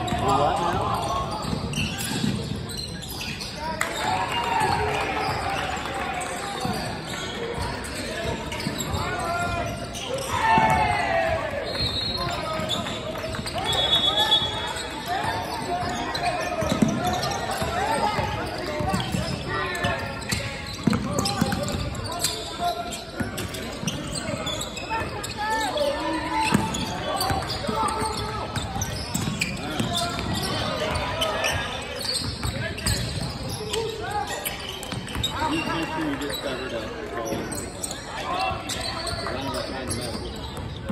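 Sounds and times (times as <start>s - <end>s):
shoe squeaks on court: 0.0s - 10.6s, 11.6s - 40.9s
players shouting: 7.8s - 12.8s
basketball bouncing: 20.3s - 21.9s, 26.5s - 31.0s.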